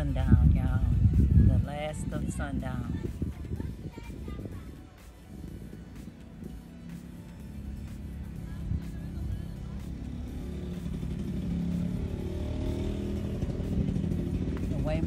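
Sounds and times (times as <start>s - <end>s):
vehicle engine approaching: 0.0s - 15.0s.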